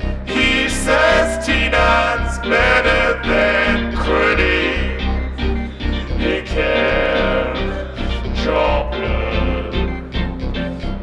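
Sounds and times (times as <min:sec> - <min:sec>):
electronic backing with bass: 0:00.0 - 0:11.0
man singing into microphone: 0:00.3 - 0:05.1, 0:06.2 - 0:07.8, 0:08.4 - 0:10.0.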